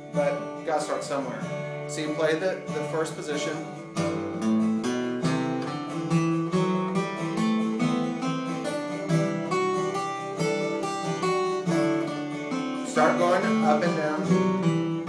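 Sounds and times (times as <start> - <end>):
acoustic guitar scale line: 0.0 - 15.0
strummed guitar chords: 0.0 - 15.0.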